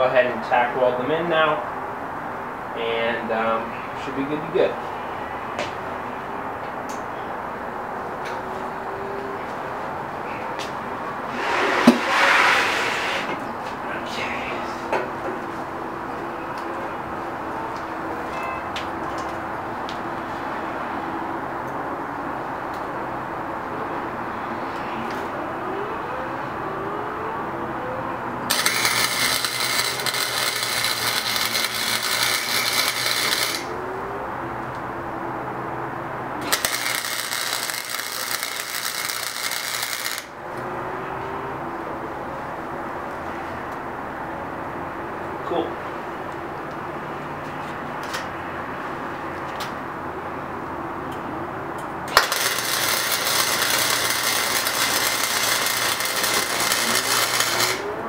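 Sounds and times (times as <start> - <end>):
welder arc crackling: 28.5 - 33.7, 36.4 - 40.4, 52.1 - 57.9.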